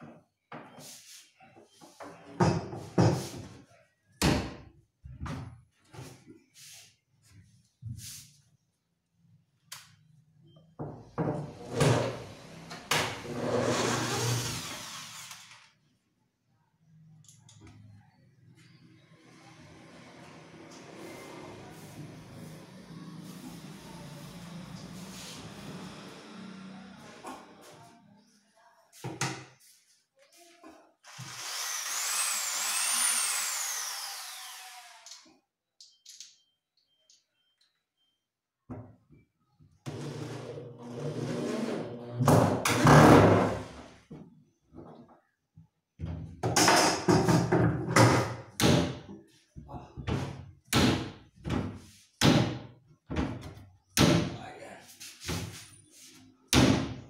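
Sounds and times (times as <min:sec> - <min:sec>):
electric drill whining: 0:13.8 - 0:15.7, 0:31.1 - 0:35.3.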